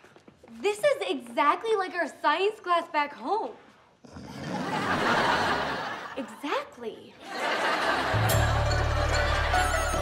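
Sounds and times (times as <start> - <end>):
studio audience laughter: 4.4 - 6.4, 7.2 - 10.0.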